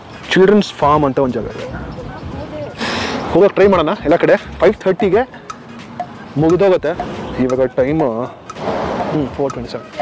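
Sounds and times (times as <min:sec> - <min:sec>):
person speaking: 0:01.4 - 0:10.0.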